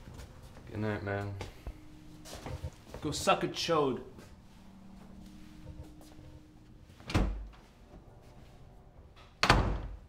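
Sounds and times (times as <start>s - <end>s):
door slamming shut: 7.1s - 7.5s, 9.2s - 10.0s.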